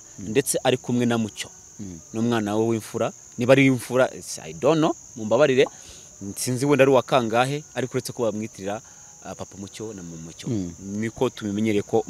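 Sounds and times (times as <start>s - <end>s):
crickets chirring: 0.0s - 12.0s
man talking: 0.2s - 12.0s.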